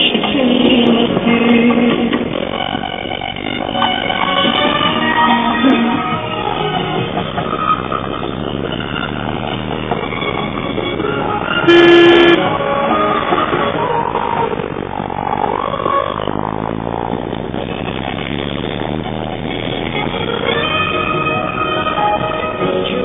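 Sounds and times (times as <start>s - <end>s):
music playing: 0.0s - 23.0s
truck horn blast: 11.6s - 12.7s.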